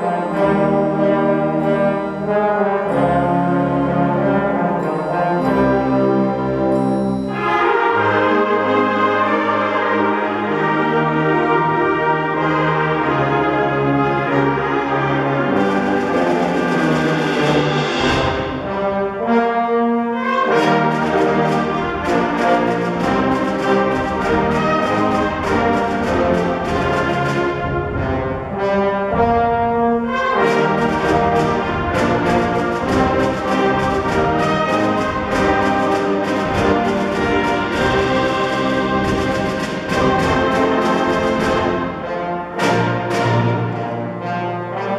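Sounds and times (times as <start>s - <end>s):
concert band brass chords: 0.0s - 44.9s.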